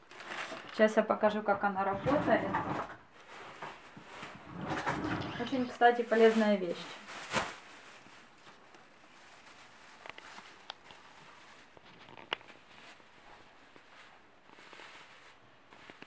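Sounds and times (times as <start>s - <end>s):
plastic bag rustling: 0.0s - 16.0s.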